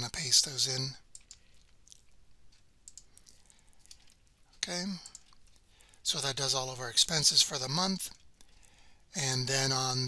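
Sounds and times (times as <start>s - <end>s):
mouse and keyboard clicks: 1.1s - 4.2s.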